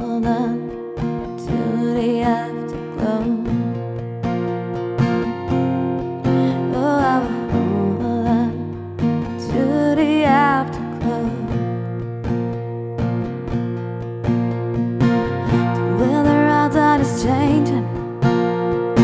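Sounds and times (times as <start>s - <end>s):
woman singing with vibrato: 0.0s - 0.8s, 1.4s - 3.9s, 6.3s - 8.8s, 9.4s - 11.8s, 15.5s - 18.2s
acoustic guitar strumming: 0.0s - 19.0s.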